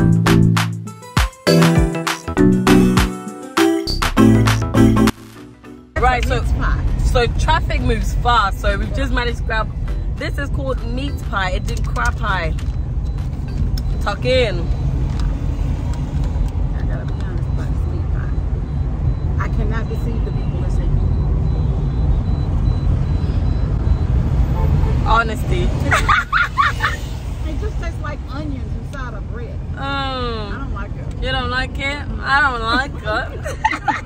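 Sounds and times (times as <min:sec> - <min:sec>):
car interior road noise: 0:05.9 - 0:34.0
voices: 0:06.0 - 0:12.6, 0:14.0 - 0:14.8, 0:16.6 - 0:18.6, 0:19.2 - 0:21.1, 0:25.0 - 0:34.0.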